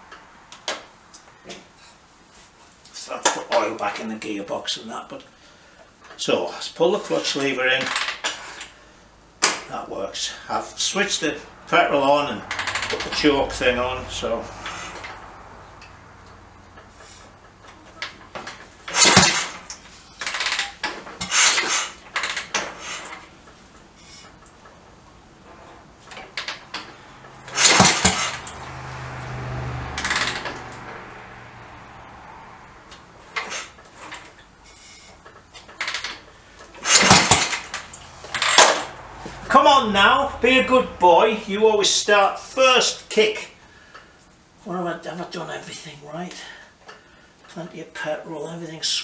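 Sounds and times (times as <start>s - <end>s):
motorcycle kickstart clattering: 7.8s - 8.8s, 12.2s - 24.8s, 25.4s - 28.7s, 29.8s - 31.0s, 32.9s - 39.6s
engine turning over: 10.8s - 42.1s.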